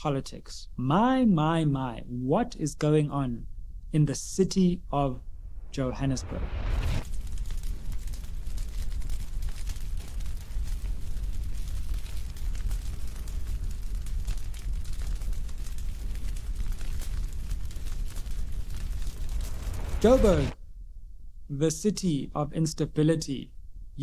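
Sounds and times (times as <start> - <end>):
fire rumbling and crackling: 5.2 - 20.6.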